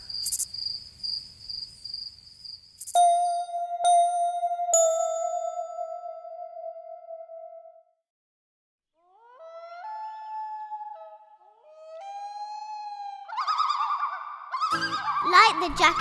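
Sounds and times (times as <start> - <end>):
chime ringing: 3.0 - 7.6
wolf howling: 9.1 - 15.3.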